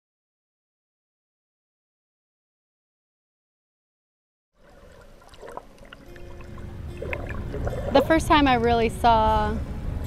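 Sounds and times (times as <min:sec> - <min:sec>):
water sloshing and bubbling: 0:04.6 - 0:09.6.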